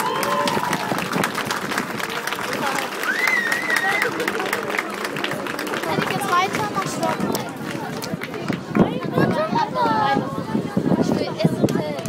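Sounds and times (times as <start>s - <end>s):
mix of voices: 0.0s - 12.0s.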